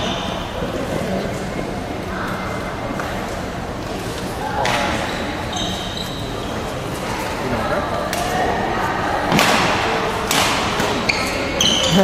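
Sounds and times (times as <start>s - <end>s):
shoes squeaking on court: 4.8s - 7.4s, 10.8s - 12.0s
rackets hitting shuttlecock: 9.3s - 12.0s.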